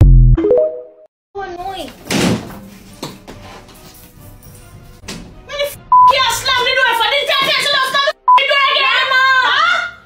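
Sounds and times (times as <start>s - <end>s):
door slamming shut: 2.1s - 2.6s.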